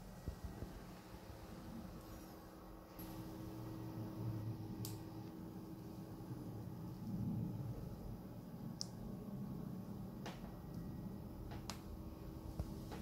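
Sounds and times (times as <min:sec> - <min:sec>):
low rumble and hum: 0:00.0 - 0:13.0.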